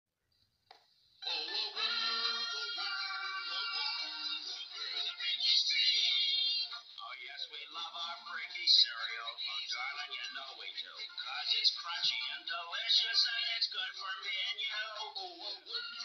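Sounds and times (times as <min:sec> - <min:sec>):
sung jingle through small speaker: 0:01.2 - 0:16.0.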